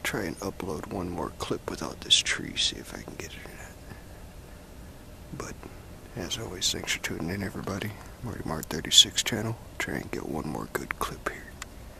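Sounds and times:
faint steady hiss: 0.0 - 11.9
man whispering: 1.8 - 4.1, 5.3 - 11.6.

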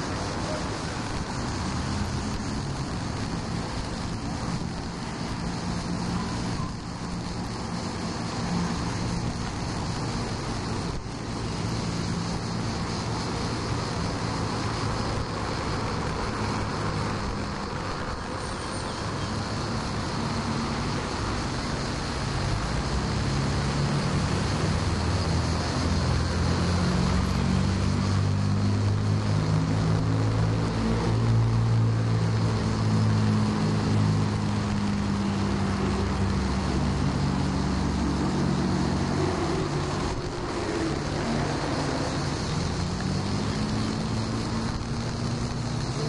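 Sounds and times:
low engine drone: 0.0 - 46.0
road traffic hum: 0.0 - 46.0.

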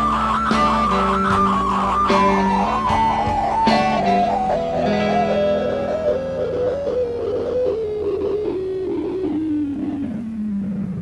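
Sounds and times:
electric guitar music: 0.0 - 11.0.

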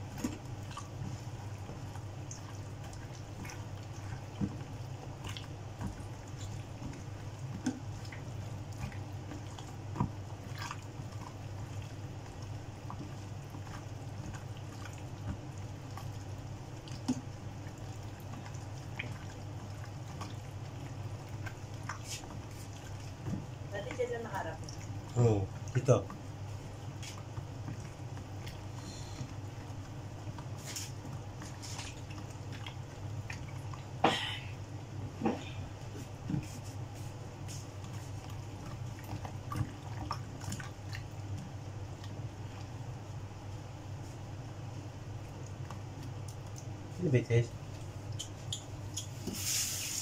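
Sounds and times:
hands mixing squid in egg: 0.0 - 50.0
steady low hum: 0.0 - 50.0.

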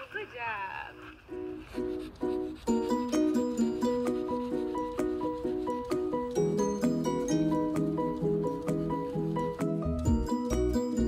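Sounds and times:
melody of short notes: 2.7 - 11.0.

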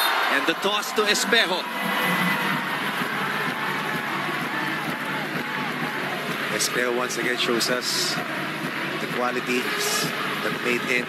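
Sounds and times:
arena crowd cheering: 0.0 - 11.0.

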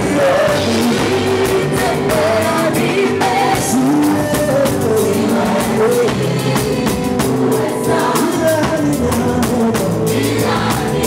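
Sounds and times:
gospel choir singing: 0.0 - 11.0
live band with drumbeat: 0.0 - 11.0.

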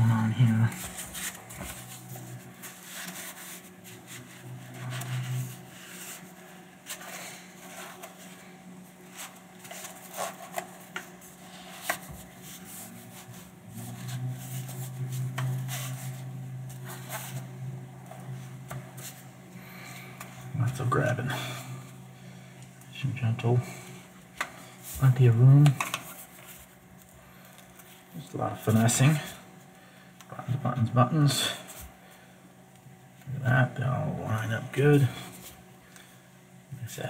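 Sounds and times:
low hum: 0.0 - 36.9
fabric rubbing against lens: 9.0 - 17.6.

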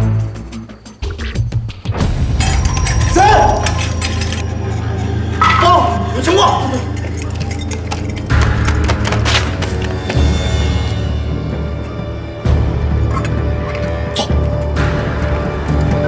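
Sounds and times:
tense film score: 0.0 - 16.0
man shouting: 3.1 - 3.7.

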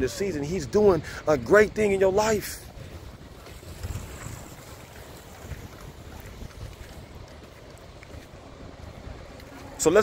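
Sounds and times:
wind buffeting microphone: 0.0 - 10.0
ocean surf hiss: 0.9 - 1.3, 2.3 - 7.1.

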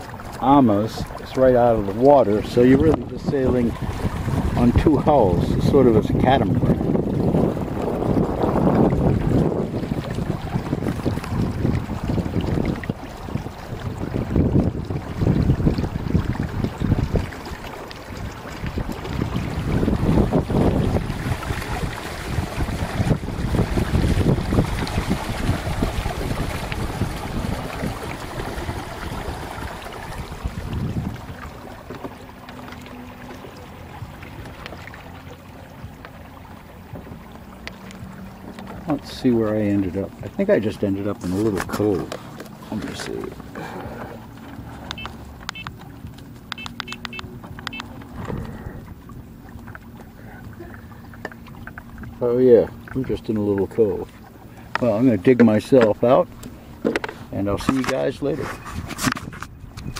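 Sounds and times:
wind buffeting microphone: 0.0 - 32.3, 36.6 - 50.8, 51.4 - 59.9
water rushing along hulls: 0.0 - 59.9.

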